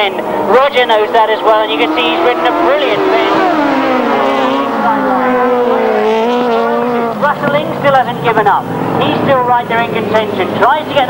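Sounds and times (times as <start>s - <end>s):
racing sidecar engines: 0.0s - 11.0s
engine passing close: 0.1s - 11.0s.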